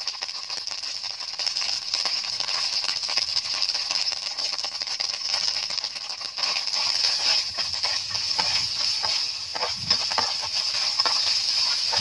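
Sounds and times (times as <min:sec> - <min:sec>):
meatballs sizzling in oil: 0:00.0 - 0:12.0.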